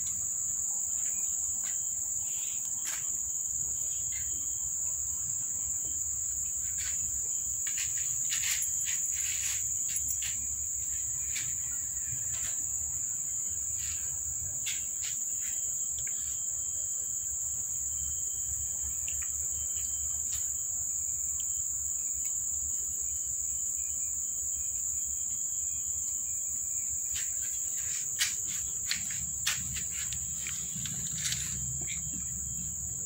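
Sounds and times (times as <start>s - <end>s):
high-pitched insect chorus: 0.0s - 33.0s.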